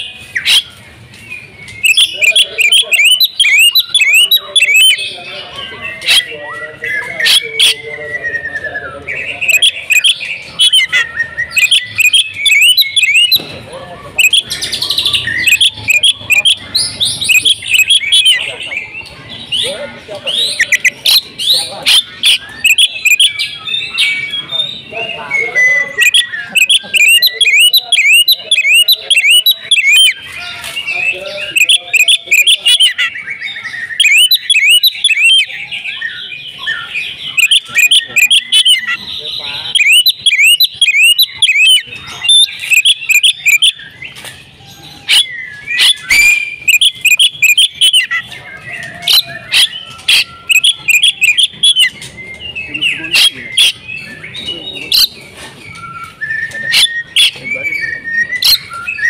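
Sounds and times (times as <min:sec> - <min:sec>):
bird singing fast chirps: 0:00.0 - 0:59.0.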